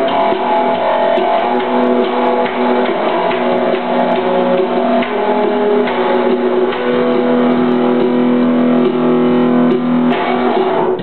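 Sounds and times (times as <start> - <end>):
electric bass chords ringing: 0.0 - 11.0.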